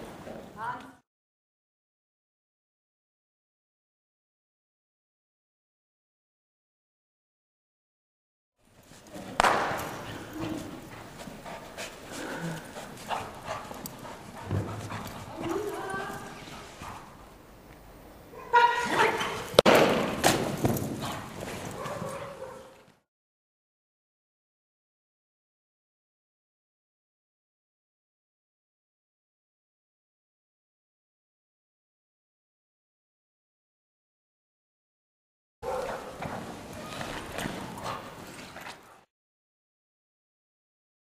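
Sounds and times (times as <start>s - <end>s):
dog paws thumping on sand: 9.0s - 17.2s, 19.5s - 22.7s.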